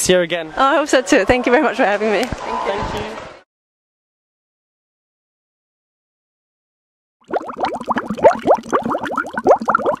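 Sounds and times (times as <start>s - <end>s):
water bubbling: 7.2s - 10.0s.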